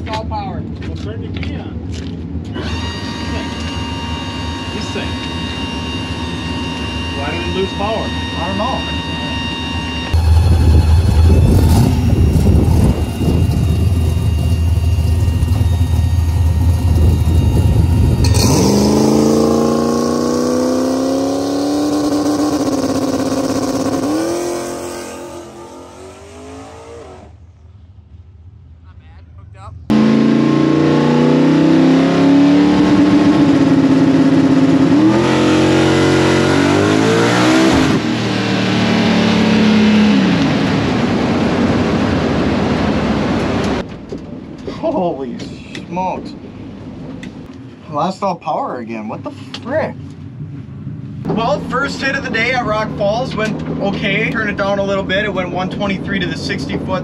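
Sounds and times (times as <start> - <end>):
drag car engine through gears: 2.4 - 27.4, 29.9 - 43.9.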